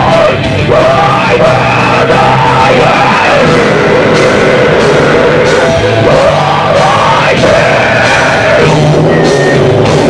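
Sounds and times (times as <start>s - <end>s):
live rock band playing: 0.0s - 10.0s
yelled vocals: 0.0s - 10.0s.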